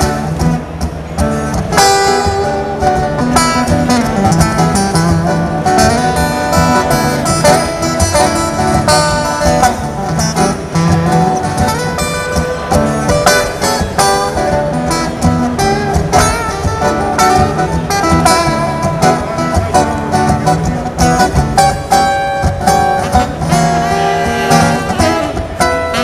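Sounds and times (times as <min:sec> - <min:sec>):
amplified acoustic guitar solo: 0:00.0 - 0:26.0.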